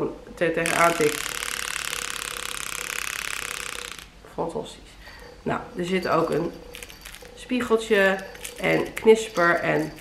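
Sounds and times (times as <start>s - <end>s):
toy pull-string mechanism buzzing: 0.6s - 4.2s.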